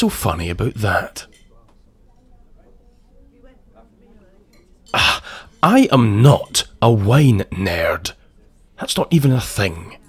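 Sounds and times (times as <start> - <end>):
distant diners murmuring: 0.8 - 8.8
cutlery and dishes clinking: 1.2 - 3.0, 4.4 - 5.3.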